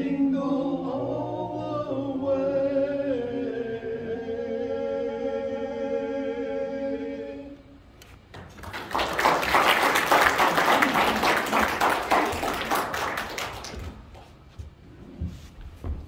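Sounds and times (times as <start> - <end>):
audience applauding: 8.4 - 14.3.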